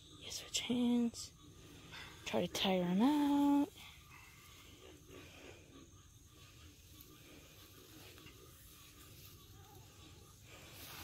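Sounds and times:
insects buzzing: 0.0 - 11.0.

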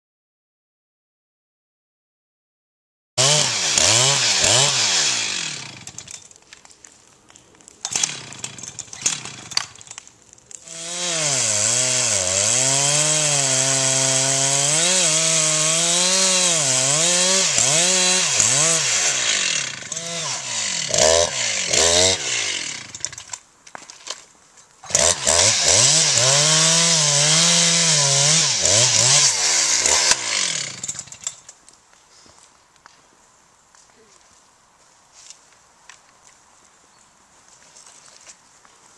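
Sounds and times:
chainsaw revving: 3.2 - 6.2, 7.8 - 9.8, 10.6 - 23.3, 24.8 - 31.3.

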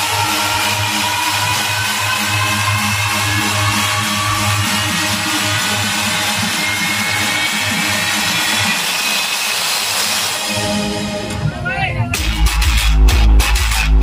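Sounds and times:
electronic dance music with bass: 0.0 - 14.0.

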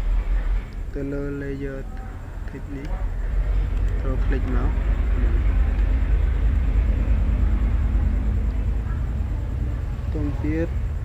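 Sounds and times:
faint steady hum: 0.0 - 11.0
low background rumble: 0.0 - 11.0.

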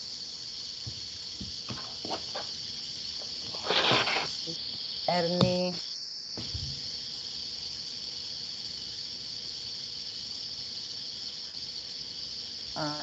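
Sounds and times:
high-pitched electronic hiss: 0.0 - 13.0.

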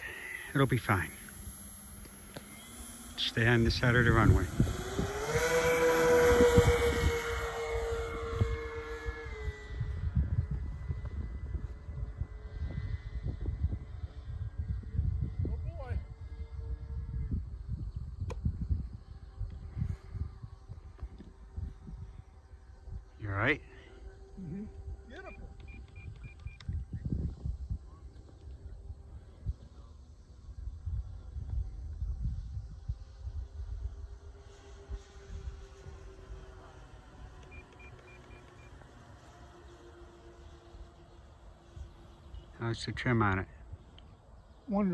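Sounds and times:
model plane motors whining: 0.0 - 44.9
wind rumble on microphone: 3.2 - 37.5.

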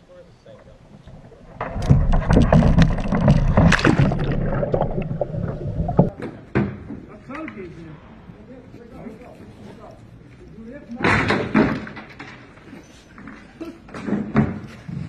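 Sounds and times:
water splashing and churning: 0.9 - 6.1.

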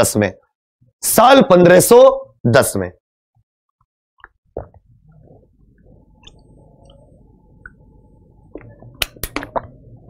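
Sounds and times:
man gulping water: 4.2 - 7.0.

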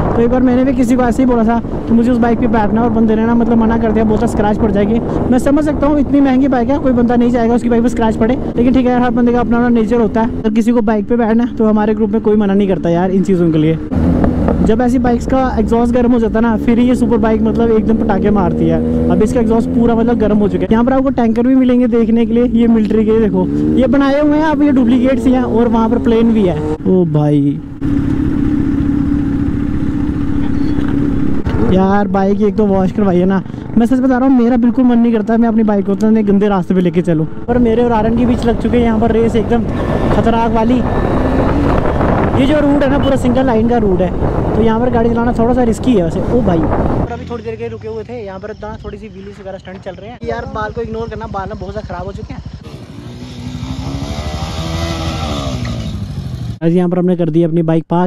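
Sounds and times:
motorcycle engine running steadily: 0.0 - 54.9
low rumble of rough road: 0.0 - 58.0
motorcycle engine idling: 47.2 - 54.0.

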